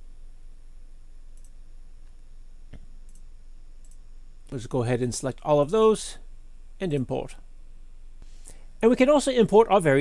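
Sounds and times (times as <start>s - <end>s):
low background hum: 0.0s - 10.0s
computer mouse clicks: 1.3s - 1.6s, 2.7s - 4.0s.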